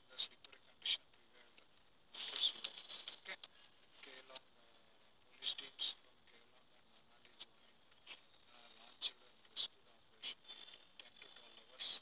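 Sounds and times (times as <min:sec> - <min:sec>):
newspaper rustling: 0:02.1 - 0:03.4.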